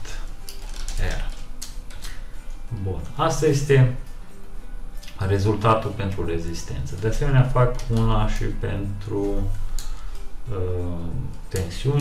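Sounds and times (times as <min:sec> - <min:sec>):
computer keyboard keystrokes: 0:07.7 - 0:08.1.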